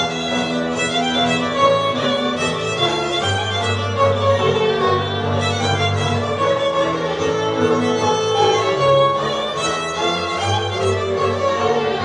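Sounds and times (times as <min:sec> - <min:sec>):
accordion: 0:00.0 - 0:12.0
fiddle playing folk tune: 0:00.0 - 0:12.0.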